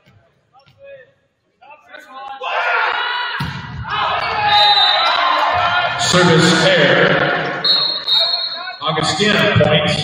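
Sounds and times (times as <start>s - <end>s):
indistinct voices echoing: 2.3s - 10.0s.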